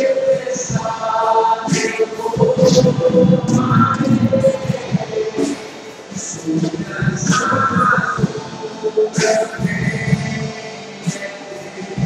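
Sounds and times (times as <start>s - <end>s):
acoustic guitar: 0.0s - 12.0s
electric keyboard: 0.0s - 12.0s.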